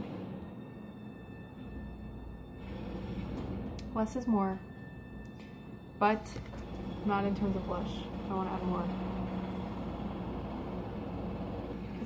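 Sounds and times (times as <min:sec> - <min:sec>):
low background rumble and hum: 0:00.0 - 0:12.0.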